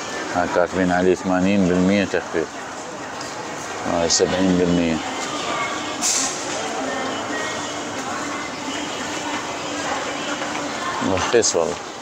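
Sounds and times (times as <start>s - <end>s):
crowd noise and voices: 0.0s - 12.0s
brief hiss: 6.0s - 6.6s.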